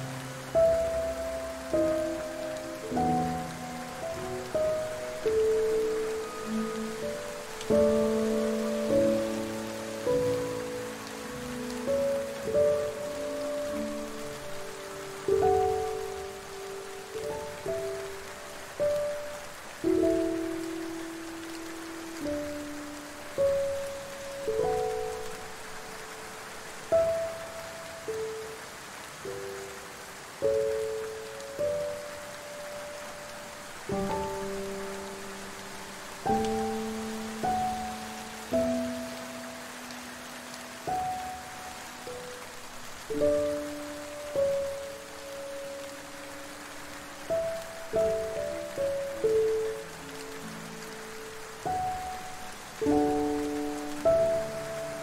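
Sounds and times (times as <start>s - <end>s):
falling rain hiss: 0.0s - 55.0s
slow soft piano melody: 0.0s - 55.0s.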